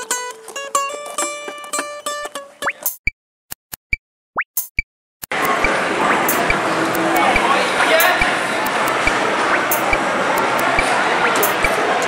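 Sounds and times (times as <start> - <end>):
arcade game machine blips: 4.7 - 11.8
voices: 5.3 - 12.0.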